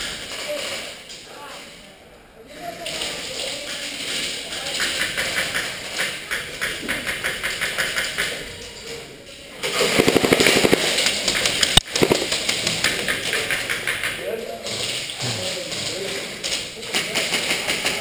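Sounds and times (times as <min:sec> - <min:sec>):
airsoft gun full-auto burst: 0:09.6 - 0:13.4.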